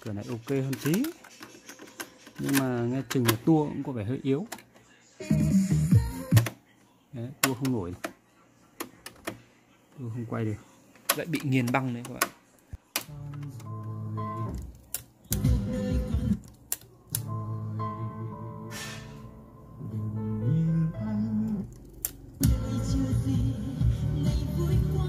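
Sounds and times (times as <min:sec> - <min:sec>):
music from a cassette player: 0:04.5 - 0:06.7, 0:12.8 - 0:25.0.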